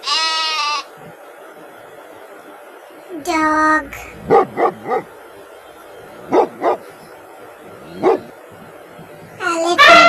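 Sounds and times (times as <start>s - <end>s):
dog barking: 3.9s - 5.2s, 6.3s - 6.9s, 7.8s - 8.4s.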